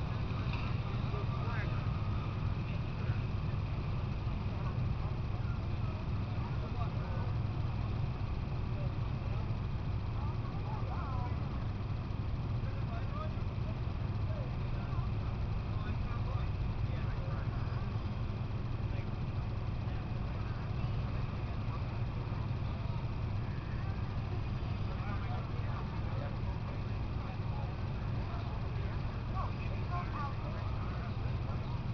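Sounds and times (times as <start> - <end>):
faint distant voices: 0.0 - 31.9
low mechanical hum: 0.0 - 31.9.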